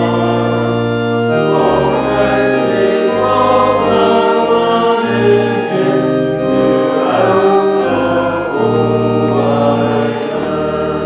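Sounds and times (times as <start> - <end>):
church organ chords: 0.0 - 11.0
voices singing: 0.0 - 11.0.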